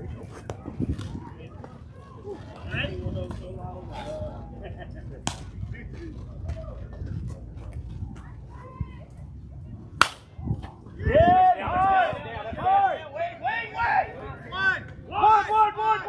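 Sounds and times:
bat hitting ball crack: 5.2s - 5.6s, 10.0s - 10.4s
players shouting: 11.0s - 16.0s.

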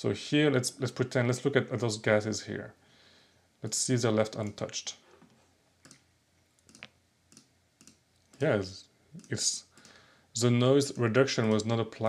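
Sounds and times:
computer mouse clicks: 5.8s - 8.5s, 9.2s - 10.0s.

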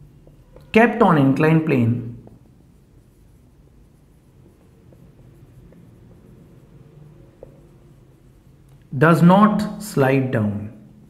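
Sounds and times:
low room hum: 0.0s - 11.0s
marker scratching on whiteboard: 0.0s - 11.0s.

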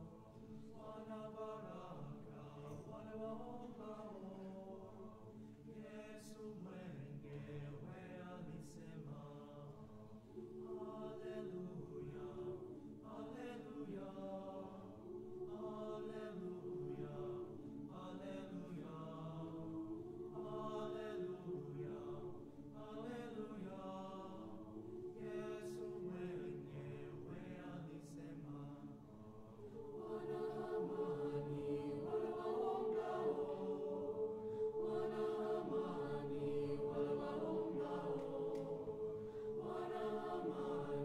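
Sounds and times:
choir singing sustained chords: 0.0s - 41.0s.

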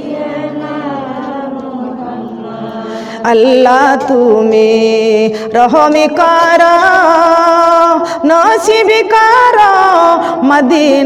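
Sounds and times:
slow devotional chanting: 0.0s - 11.0s.

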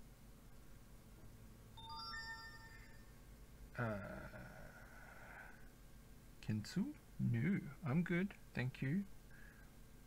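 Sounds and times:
tablet notification chime: 1.8s - 3.1s.

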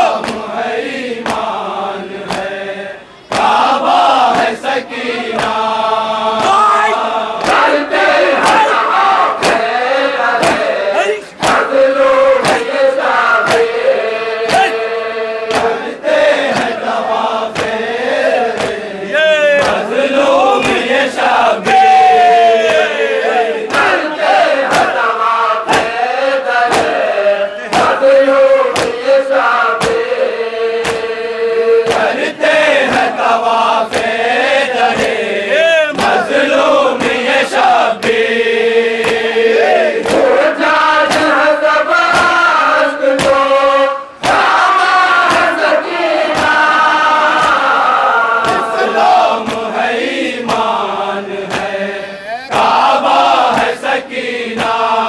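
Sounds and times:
crowd of men chanting: 0.0s - 55.0s
hand-on-chest slaps: 0.2s - 0.5s, 1.2s - 1.6s, 2.2s - 2.5s, 3.3s - 3.6s, 5.4s - 5.6s, 7.4s - 8.8s, 9.4s - 9.7s, 10.4s - 11.8s, 12.4s - 12.8s, 13.4s - 13.8s, 14.4s - 14.8s, 15.5s - 15.9s, 16.5s - 16.8s, 17.5s - 17.8s, 18.5s - 18.8s, 19.6s - 19.9s, 20.6s - 20.9s, 24.6s - 25.0s, 25.7s - 26.0s, 26.7s - 27.0s, 27.7s - 28.0s, 28.7s - 29.0s, 29.8s - 30.1s, 30.8s - 31.2s, 31.8s - 32.2s, 33.9s - 34.1s, 34.9s - 35.2s, 35.9s - 36.3s, 39.0s - 39.3s, 40.0s - 40.4s, 41.0s - 41.4s, 42.1s - 42.4s, 43.2s - 43.4s, 45.2s - 45.6s, 46.3s - 46.6s, 47.3s - 47.7s, 48.4s - 48.8s, 49.4s - 49.7s, 50.4s - 50.7s, 51.5s - 51.8s, 53.5s - 53.7s.

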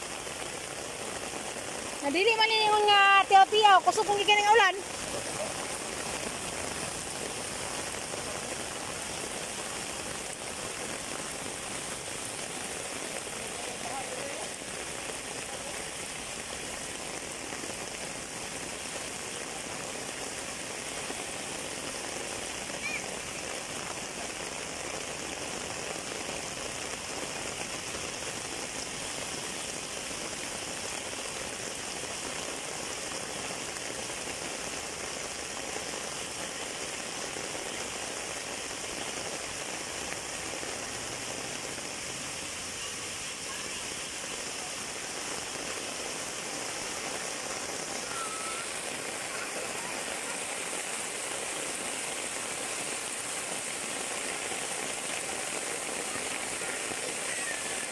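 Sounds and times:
heavy rain pouring: 0.0s - 57.9s.

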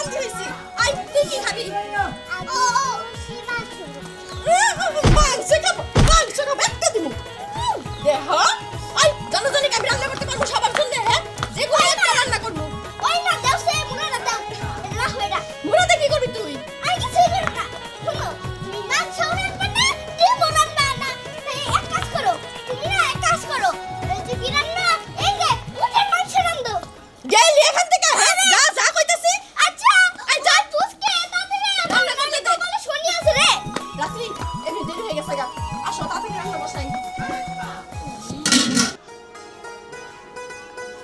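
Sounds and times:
child's voice: 0.0s - 7.2s, 8.0s - 37.8s
music playing: 0.0s - 28.8s, 31.8s - 41.0s
lively voices: 0.0s - 39.0s
plastic stool thunks on head: 5.0s - 5.4s, 6.0s - 6.2s.

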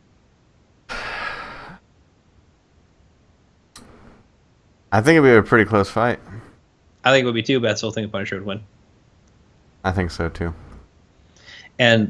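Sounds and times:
person exhaling breathily: 0.9s - 1.8s.

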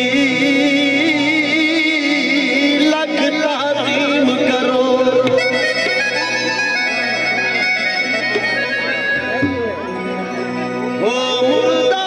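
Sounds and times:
harmonium playing held notes: 0.0s - 12.0s
tabla accompaniment: 0.0s - 12.0s.

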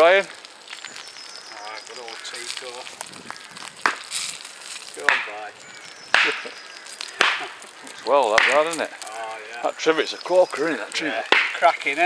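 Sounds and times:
wood cracking: 0.0s - 12.0s.

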